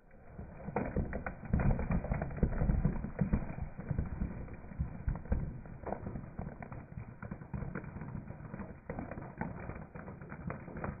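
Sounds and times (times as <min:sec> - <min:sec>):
low tyre rumble: 0:00.0 - 0:11.0
spaghetti cracking under tyre: 0:00.0 - 0:11.0.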